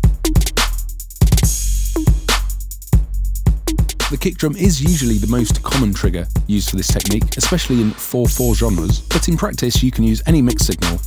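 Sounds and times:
kick drum: 0.0s - 0.5s, 1.2s - 2.4s, 3.0s - 4.0s
closed hi-hat pattern: 0.0s - 11.0s
sustained low bass: 3.5s - 7.8s.

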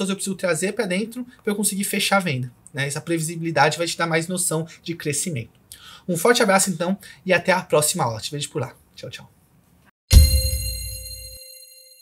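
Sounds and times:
deep bass boom hit: 10.1s - 11.1s
bright metallic ring: 10.1s - 12.0s.

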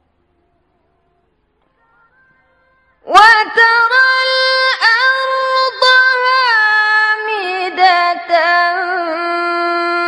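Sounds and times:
woman chanting recitation: 1.7s - 10.0s.

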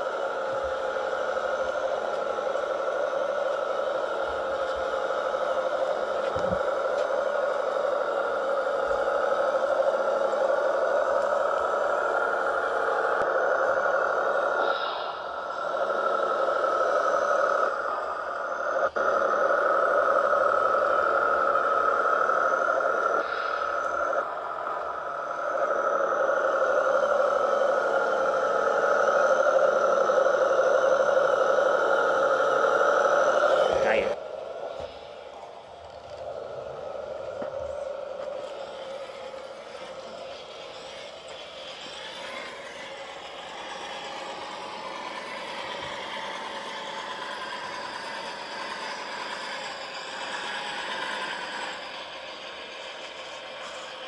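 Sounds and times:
model tractor motor whine: 0.0s - 54.0s.

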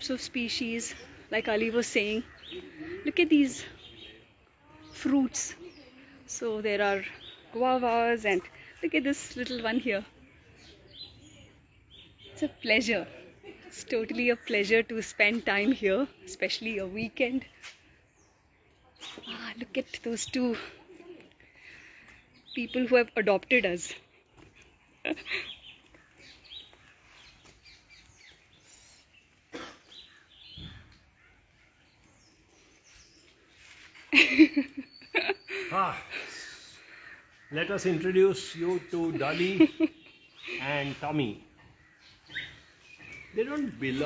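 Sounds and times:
outdoor background noise: 0.0s - 44.0s
faint bird chirps: 24.2s - 44.0s.

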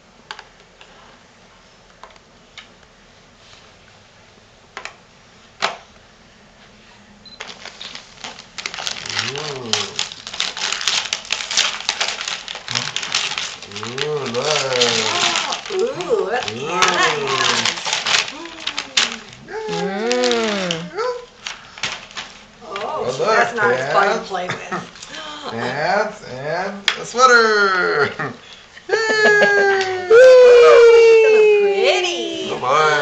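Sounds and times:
wrapping paper crinkling and tearing: 7.4s - 24.2s
person making wordless sounds: 9.0s - 10.2s, 12.6s - 21.3s, 25.1s - 33.0s.

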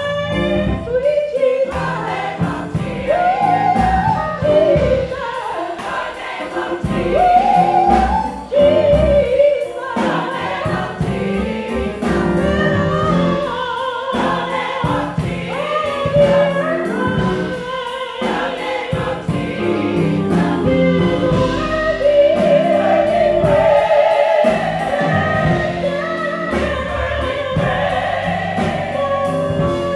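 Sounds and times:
gospel choir singing: 0.0s - 29.9s
steady beat: 1.8s - 29.9s.

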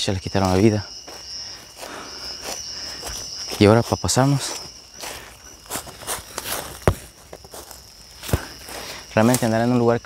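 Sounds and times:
crickets chirping: 0.0s - 10.0s
footsteps in dry leaves: 0.3s - 9.8s.

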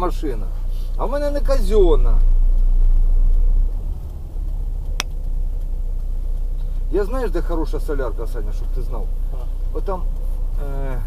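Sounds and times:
car engine and road rumble: 0.0s - 11.0s
sharp click: 4.9s - 5.2s.

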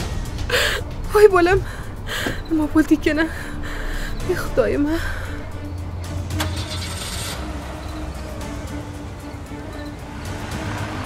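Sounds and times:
background music: 0.0s - 11.0s
woman gasping: 0.5s - 0.9s, 1.6s - 2.5s, 3.3s - 4.3s
woman speaking: 1.1s - 5.6s
car door shutting: 2.2s - 2.5s.

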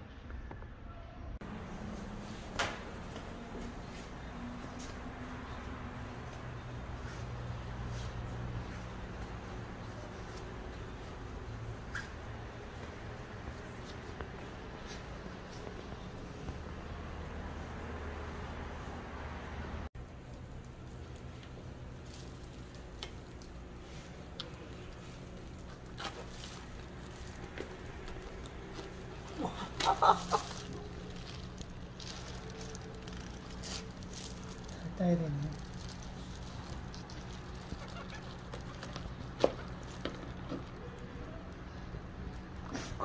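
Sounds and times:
low background hum: 0.0s - 43.0s
plastic gloves rustling: 20.5s - 41.1s.

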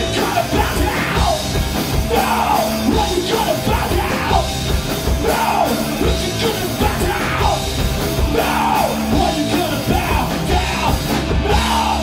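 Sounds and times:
vocalist yelling: 0.0s - 4.5s, 5.1s - 7.6s, 8.3s - 12.0s
punk band playing: 0.0s - 12.0s.

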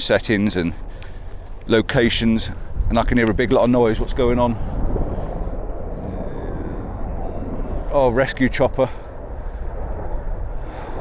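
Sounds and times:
helicopter flying overhead: 0.0s - 11.0s.

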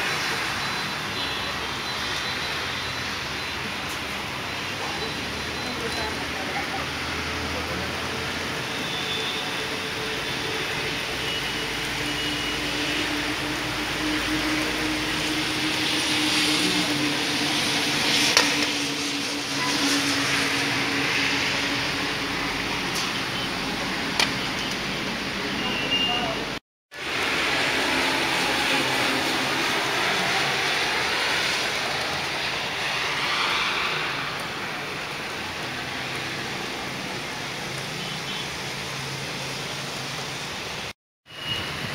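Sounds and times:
heavy wind-driven rain: 2.8s - 25.4s, 26.4s - 40.9s.

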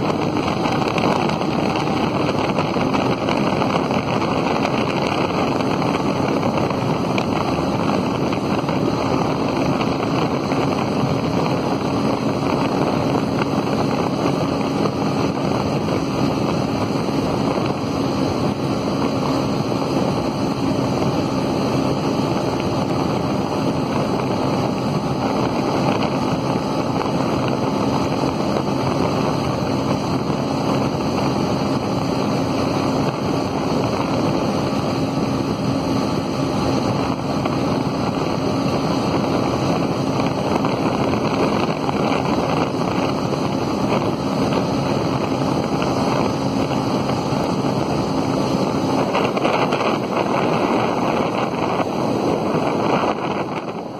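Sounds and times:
motorcycle engine at high speed: 0.0s - 53.9s
wind rush over microphone: 0.0s - 53.9s.

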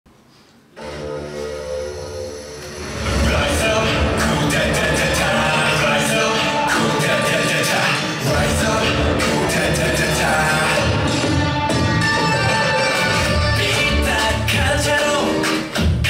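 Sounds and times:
held-chord synth intro: 0.8s - 12.8s
dance beat with drums and bass: 3.2s - 16.0s.

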